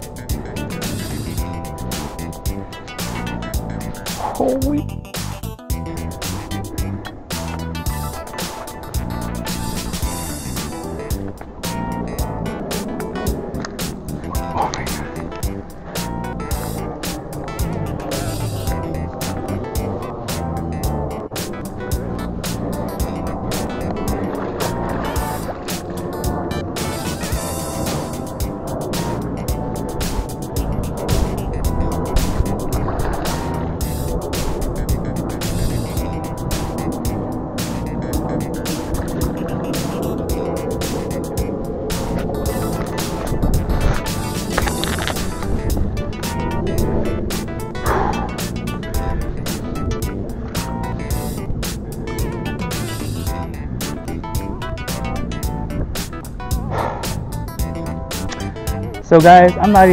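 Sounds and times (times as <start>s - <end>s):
background music with beats: 0.0s - 59.9s.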